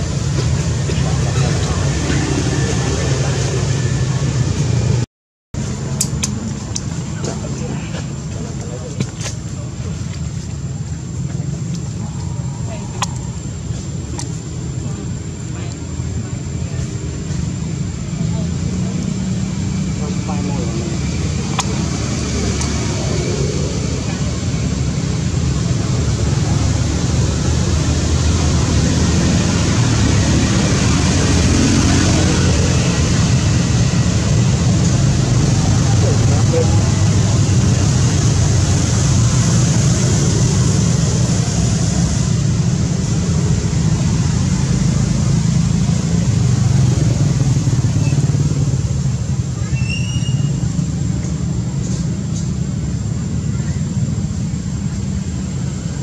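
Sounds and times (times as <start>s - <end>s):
indistinct voices: 0.0s - 4.9s, 5.6s - 56.0s
low rumble and hiss: 5.6s - 56.0s.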